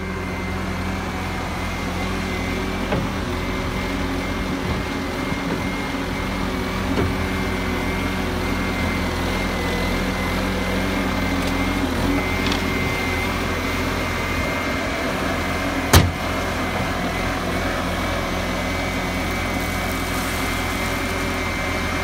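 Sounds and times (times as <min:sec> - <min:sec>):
diesel engine running: 0:00.0 - 0:22.0.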